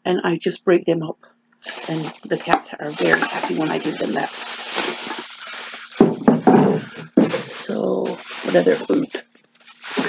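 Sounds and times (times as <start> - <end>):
plastic bag handling: 1.6 - 10.0.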